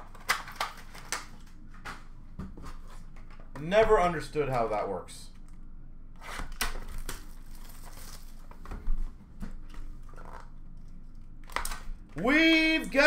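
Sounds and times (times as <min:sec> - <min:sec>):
packaging rustling and crinkling: 0:06.8 - 0:09.1.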